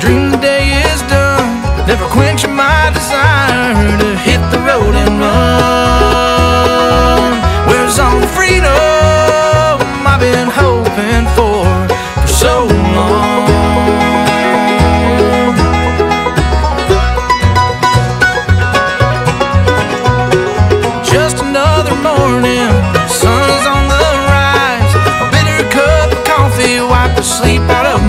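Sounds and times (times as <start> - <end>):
acoustic guitar: 0.0 - 28.0
banjo: 0.0 - 28.0
fiddle: 0.0 - 28.0
walking bass line: 0.0 - 28.0.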